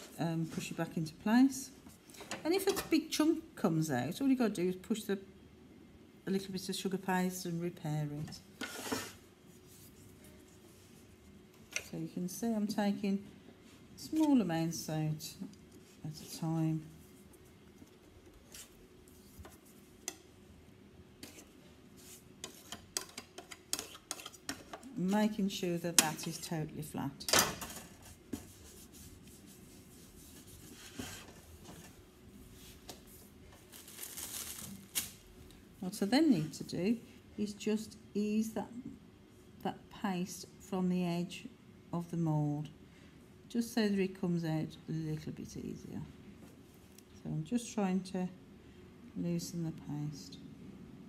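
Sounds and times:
faint steady hum: 0.0 - 51.0
hands rubbing sugar paste: 28.0 - 31.6.

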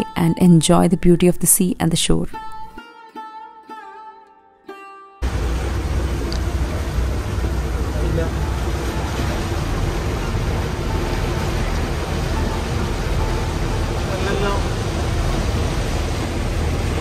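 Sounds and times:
boat engine rumble: 5.2 - 17.0
water rushing past hull: 5.2 - 17.0.

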